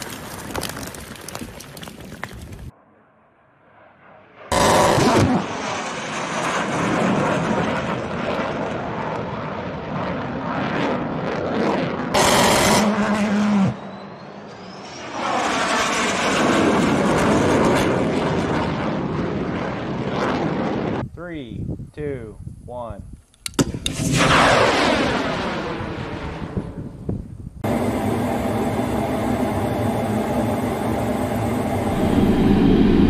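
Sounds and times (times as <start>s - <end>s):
fighter jet passing over: 2.8s - 21.0s, 23.8s - 33.0s
very loud blasts: 4.5s - 7.2s, 12.1s - 13.9s.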